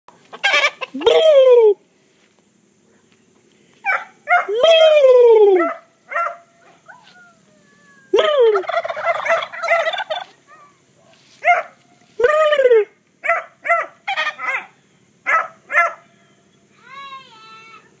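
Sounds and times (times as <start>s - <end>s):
turkeys gobbling: 0.2s - 1.6s, 8.2s - 10.5s, 13.3s - 14.7s
person shouting: 1.0s - 1.8s, 4.5s - 5.8s, 7.8s - 8.6s.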